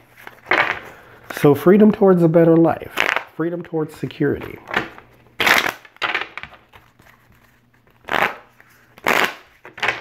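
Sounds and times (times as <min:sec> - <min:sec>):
cards being shuffled: 0:05.5 - 0:10.0.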